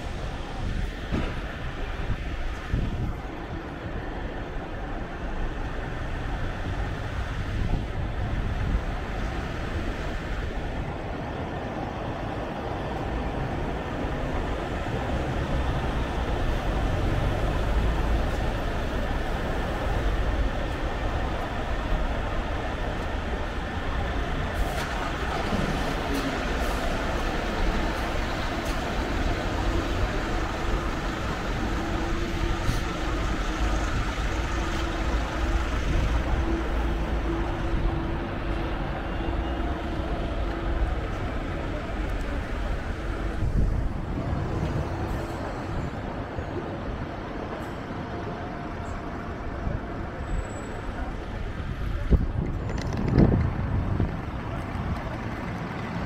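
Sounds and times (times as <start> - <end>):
bus engine running: 0.0 - 56.0
passing cars hum: 0.0 - 56.0
traffic low rumble: 0.0 - 56.0.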